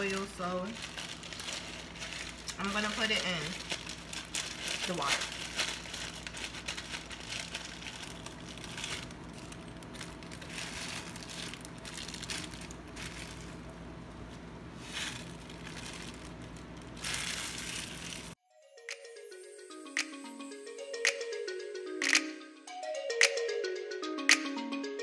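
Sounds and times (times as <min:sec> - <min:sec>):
plastic packet crinkling: 0:00.0 - 0:18.4
steady low hum: 0:00.0 - 0:18.4.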